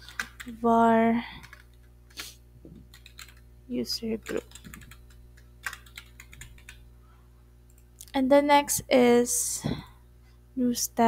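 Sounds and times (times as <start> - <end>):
computer keyboard typing: 0.0 - 0.6, 1.4 - 2.2, 2.9 - 3.4, 4.0 - 6.8.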